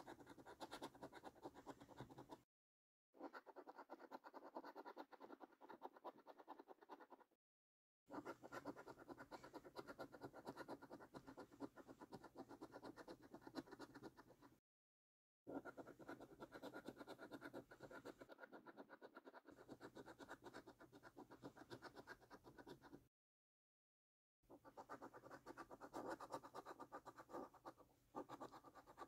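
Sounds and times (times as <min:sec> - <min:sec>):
coin scratching scratch card: 0:00.0 - 0:02.4, 0:03.2 - 0:07.3, 0:15.5 - 0:23.0, 0:24.6 - 0:29.0.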